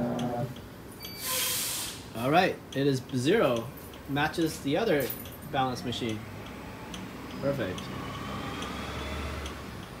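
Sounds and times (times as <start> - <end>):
low machine hum with whine: 0.0 - 7.7
light regular ticking: 0.1 - 1.1, 2.1 - 8.8, 9.4 - 10.0.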